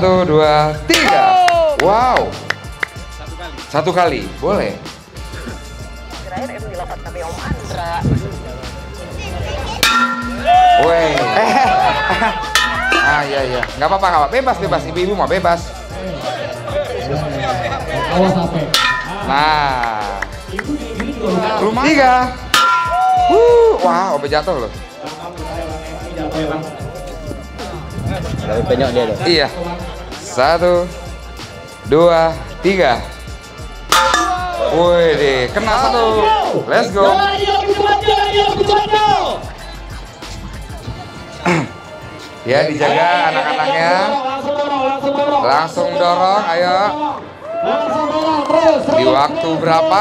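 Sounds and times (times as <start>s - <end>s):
background music: 0.0s - 50.0s
people shouting: 0.9s - 1.8s, 9.8s - 13.3s, 22.6s - 23.9s, 34.0s - 34.9s
hammer striking metal wheel: 9.8s - 10.7s, 12.6s - 13.1s, 18.8s - 19.5s, 22.6s - 23.2s, 33.9s - 34.6s.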